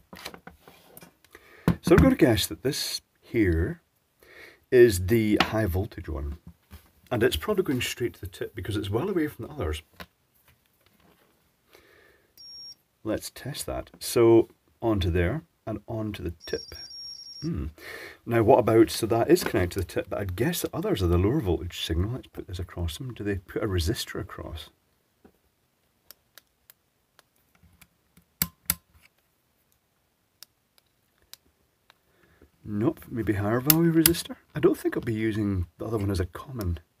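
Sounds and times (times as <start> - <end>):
handling of test leads: 12.4 - 12.8
multimeter beep: 12.4 - 12.8, 16.4 - 17.5.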